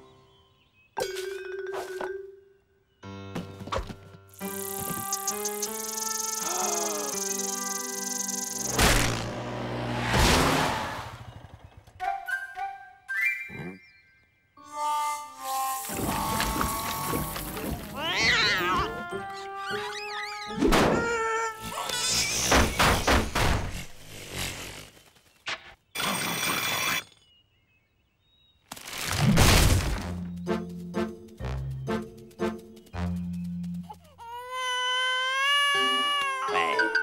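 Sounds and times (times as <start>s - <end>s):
cartoon truck engine whooshing past: 8.7s - 11.9s.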